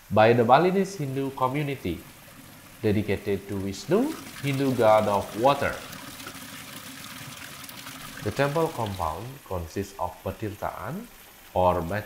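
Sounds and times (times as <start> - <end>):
fountain water splashing into pool: 0.6 - 10.0.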